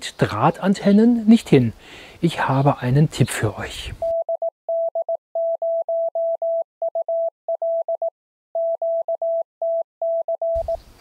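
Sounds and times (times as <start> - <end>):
morse code beeps: 4.0 - 10.8.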